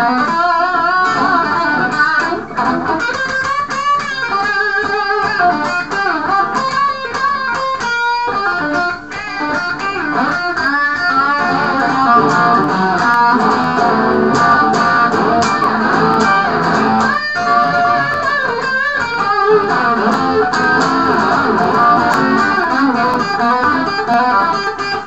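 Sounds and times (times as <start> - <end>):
electric guitar picked notes and chords: 0.0 - 25.0.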